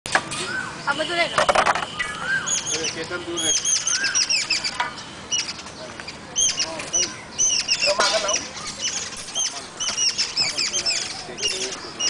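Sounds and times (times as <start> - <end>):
small birds chirping: 0.1 - 12.0.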